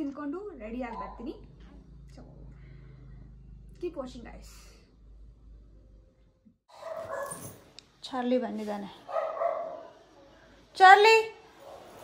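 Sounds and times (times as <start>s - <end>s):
puppy barking and yipping: 6.7s - 7.6s, 9.1s - 9.9s.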